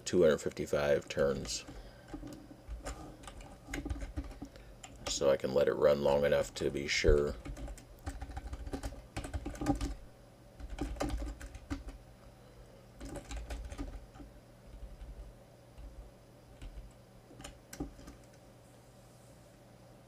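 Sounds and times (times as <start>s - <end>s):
computer keyboard typing: 1.2s - 5.3s, 6.3s - 12.0s, 13.0s - 18.4s.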